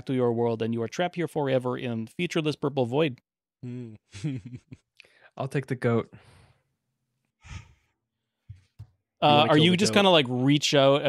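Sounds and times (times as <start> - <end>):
person breathing softly: 7.4 - 8.0.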